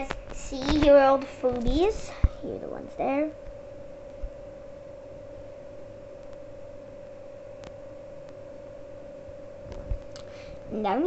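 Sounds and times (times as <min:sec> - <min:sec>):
faint hum-like tone: 0:00.0 - 0:11.0.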